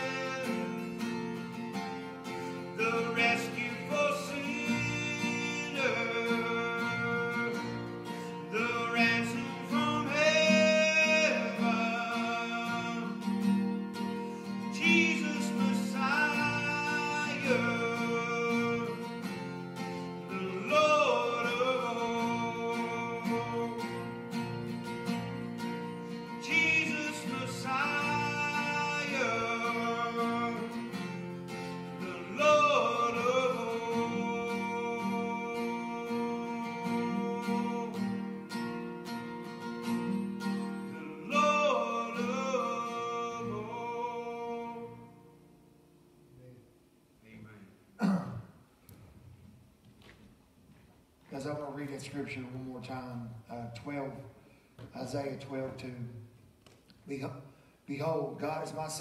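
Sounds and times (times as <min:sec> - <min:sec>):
man singing: 0:00.0 - 0:01.5, 0:02.6 - 0:13.7, 0:14.4 - 0:25.2, 0:26.1 - 0:38.9, 0:39.8 - 0:45.4
acoustic guitar chords: 0:00.0 - 0:59.0.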